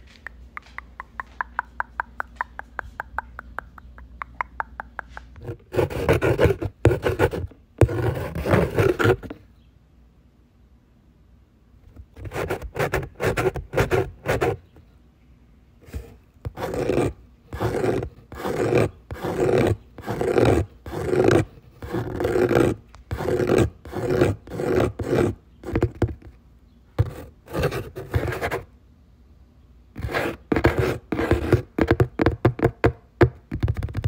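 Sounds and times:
mouth clicks: 0:00.1 - 0:05.6
mouth imitating scratching: 0:00.2 - 0:09.4, 0:15.8 - 0:26.2.

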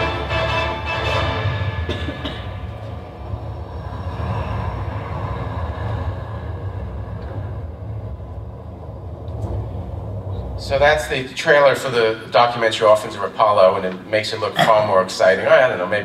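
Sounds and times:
trailer soundtrack low rumble: 0:00.0 - 0:11.2.

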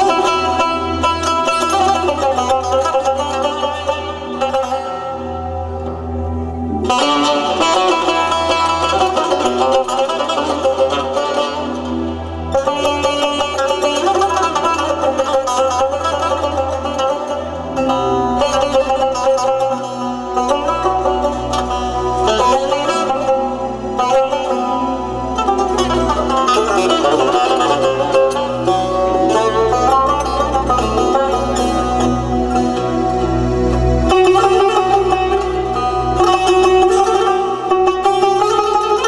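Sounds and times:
low sustained bass: 0:00.0 - 0:39.0.

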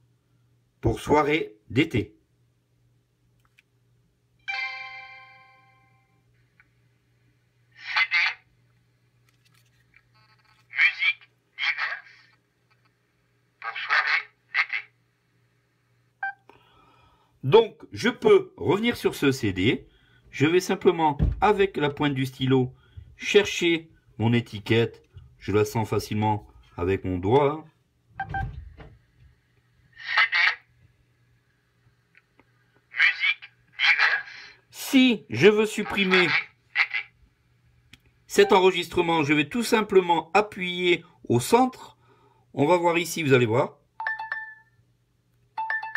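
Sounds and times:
faint steady hum: 0:00.0 - 0:45.9
recorded voice from small speaker: 0:07.7 - 0:08.8, 0:10.1 - 0:15.3, 0:29.9 - 0:31.0, 0:32.8 - 0:37.6, 0:38.3 - 0:42.0
tinny recorded voice: 0:30.0 - 0:30.7.

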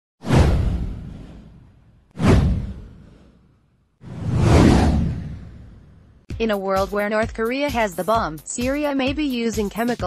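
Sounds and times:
downward whoosh: 0:04.0 - 0:06.0.

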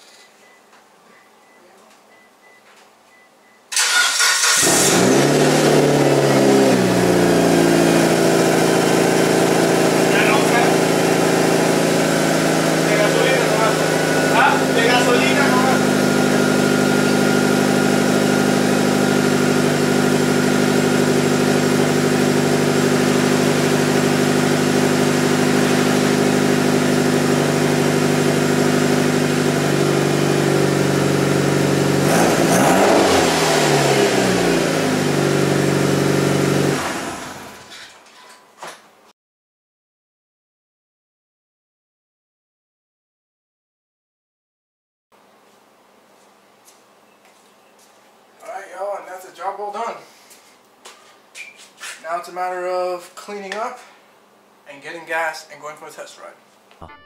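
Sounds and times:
engine revving: 0:03.8 - 0:37.6
car engine idling: 0:04.2 - 0:32.1.

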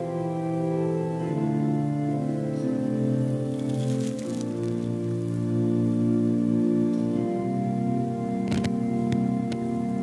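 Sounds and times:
church organ chords: 0:00.0 - 0:10.0
crackling patter: 0:03.1 - 0:06.4, 0:08.4 - 0:09.7.

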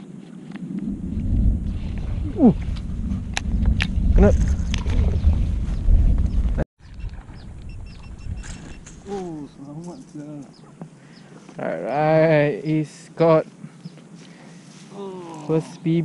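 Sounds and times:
wind rumbling on microphone: 0:00.0 - 0:10.9
person speaking: 0:09.0 - 0:10.6.

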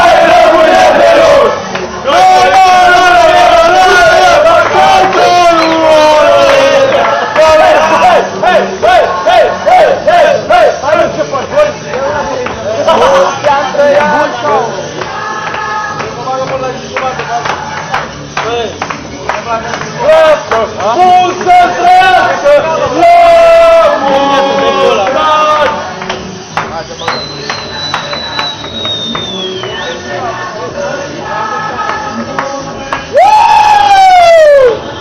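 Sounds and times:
group of men singing: 0:00.0 - 0:18.3, 0:19.5 - 0:33.2
men talking and calling out: 0:00.0 - 0:34.9
sharp hand claps: 0:06.4 - 0:07.5, 0:14.9 - 0:21.0, 0:25.0 - 0:29.9, 0:31.8 - 0:33.1.

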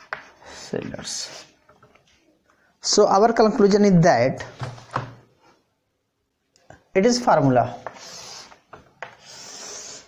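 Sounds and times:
chalk scratching on chalkboard: 0:07.8 - 0:10.0.

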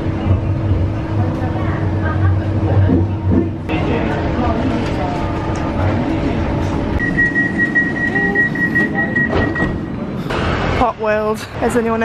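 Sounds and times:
tram interior rumble: 0:00.0 - 0:12.0.

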